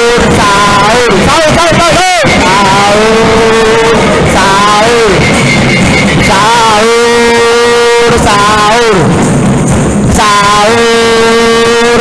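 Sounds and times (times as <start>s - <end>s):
man singing into microphone: 0.0s - 5.3s, 6.2s - 9.1s, 10.1s - 12.0s
bamboo and drum percussion: 0.0s - 12.0s.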